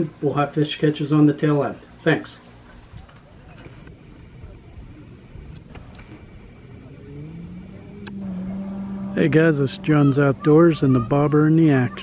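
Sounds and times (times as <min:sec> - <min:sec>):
low outdoor rumble: 0:00.0 - 0:12.0
engine hum rising in pitch: 0:05.0 - 0:12.0.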